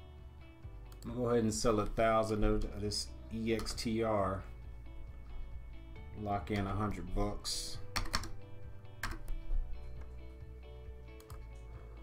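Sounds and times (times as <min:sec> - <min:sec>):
background music with held notes: 0:00.0 - 0:12.0
computer keyboard clicks: 0:07.9 - 0:08.4, 0:09.0 - 0:09.4, 0:11.1 - 0:11.5.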